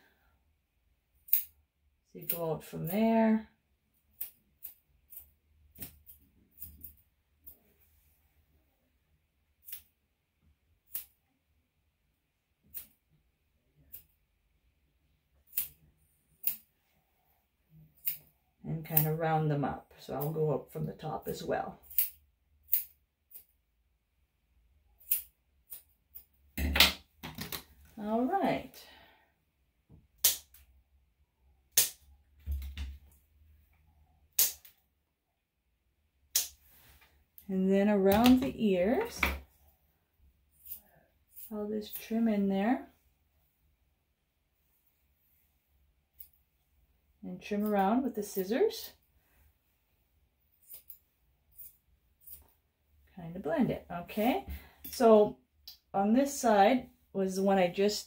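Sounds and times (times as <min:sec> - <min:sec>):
scissors snipping fur: 0:10.9 - 0:11.1, 0:15.5 - 0:15.8, 0:18.0 - 0:18.3, 0:21.8 - 0:23.5, 0:25.0 - 0:26.2, 0:40.6 - 0:42.1
nail clippers snapping: 0:34.4 - 0:34.8.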